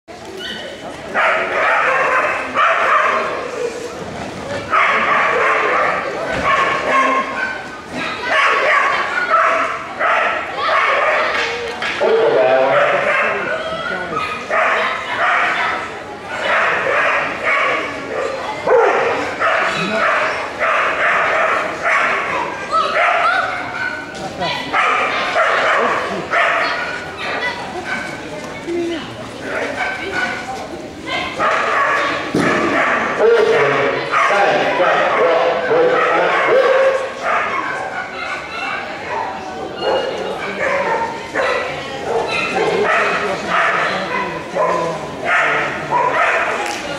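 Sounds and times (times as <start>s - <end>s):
dog barking excitedly: 0.5s - 3.5s, 4.6s - 11.4s, 12.0s - 28.2s, 31.1s - 46.6s.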